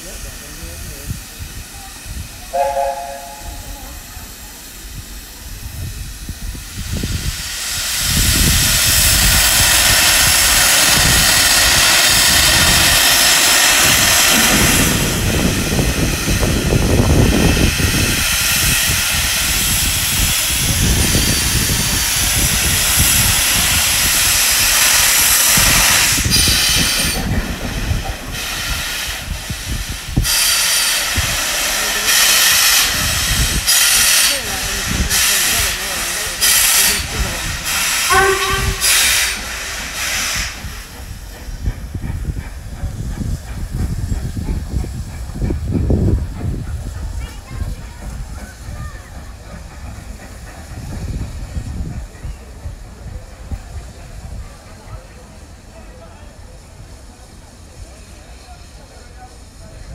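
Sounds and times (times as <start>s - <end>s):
steam locomotive hissing: 0.0s - 59.9s
locomotive exhaust bursts: 1.6s - 42.8s.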